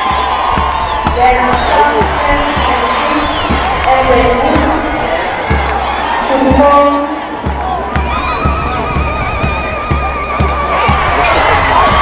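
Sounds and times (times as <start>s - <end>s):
marching bass drum beating: 0.0s - 12.0s.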